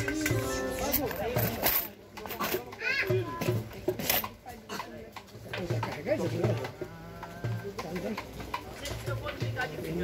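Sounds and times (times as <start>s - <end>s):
child's high voice: 2.7s - 3.5s.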